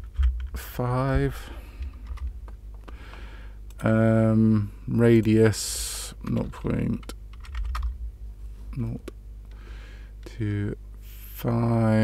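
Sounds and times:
faint low hum: 0.0 - 12.0
keyboard keys clicking: 7.0 - 7.9.

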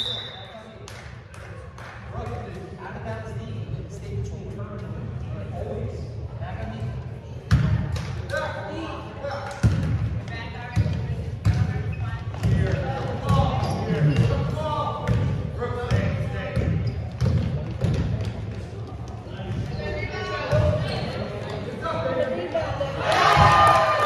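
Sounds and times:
basketball bouncing on wooden floor: 15.9 - 18.4.

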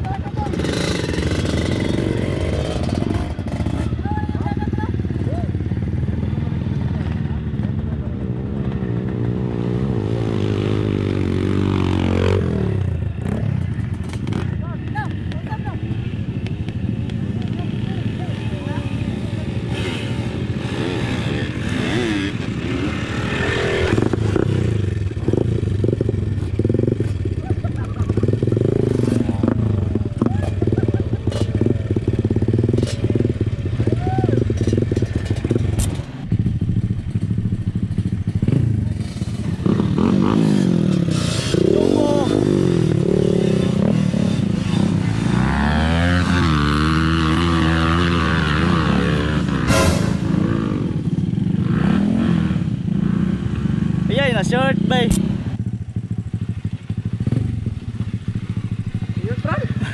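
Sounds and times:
dirt bike engine revving: 0.3 - 14.6, 17.5 - 55.6.

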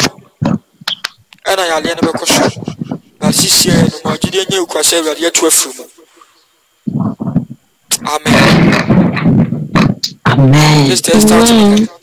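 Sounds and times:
man speaking over video call: 1.4 - 6.0.

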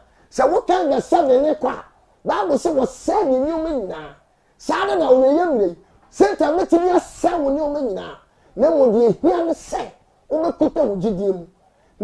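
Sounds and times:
man preaching loudly: 0.0 - 12.0.

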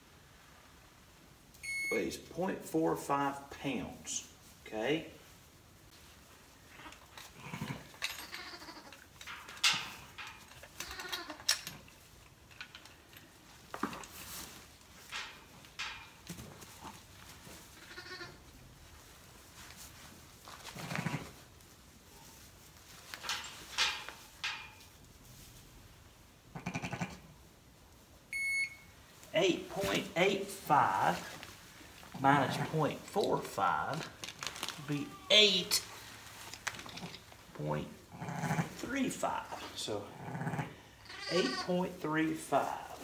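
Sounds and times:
rustling and light knocks: 5.9 - 25.8
sheep bleating: 40.4 - 41.7.

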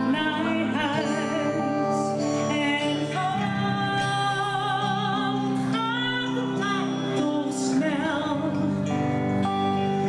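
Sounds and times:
electric guitar: 0.0 - 10.0
woman singing a ballad: 0.0 - 10.0.

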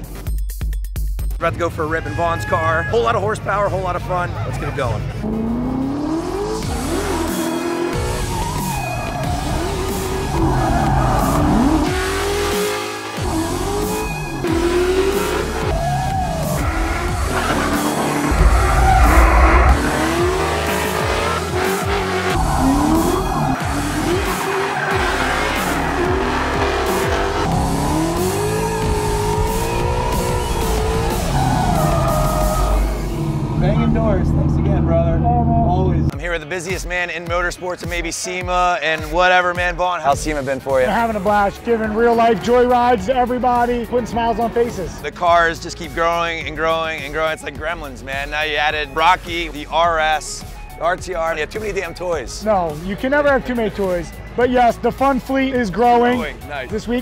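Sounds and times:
background music: 0.0 - 57.0
tires squealing: 4.9 - 36.1
car engine revving: 5.1 - 36.1.

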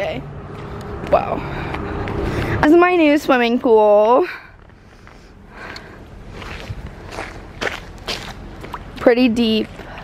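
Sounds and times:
footsteps splashing in mud puddle: 6.3 - 10.0.

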